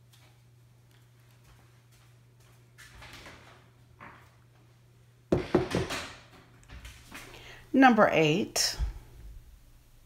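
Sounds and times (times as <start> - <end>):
sharp knocks and clatter: 5.3 - 7.0.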